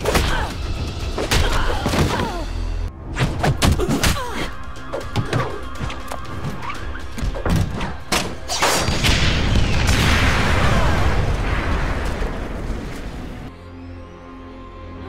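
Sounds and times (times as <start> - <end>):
dramatic music score: 0.0 - 15.0
explosion with rumble: 8.9 - 13.5.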